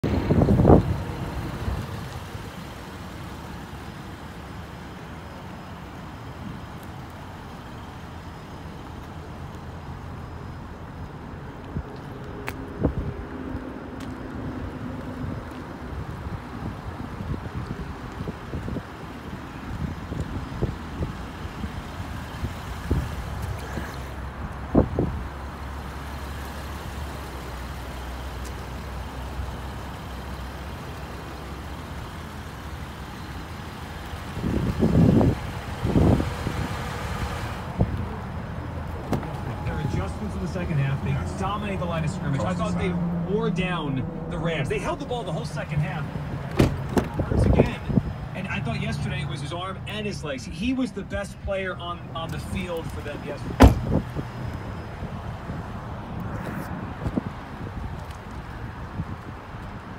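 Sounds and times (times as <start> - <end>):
low rumble of vehicle: 0.0 - 59.9.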